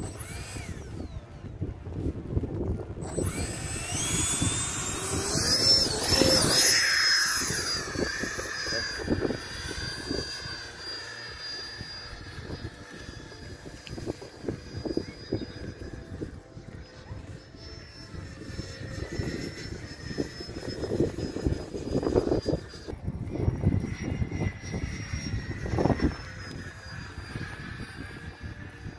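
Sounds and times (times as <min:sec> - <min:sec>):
model jet motor whining: 0:00.0 - 0:28.9.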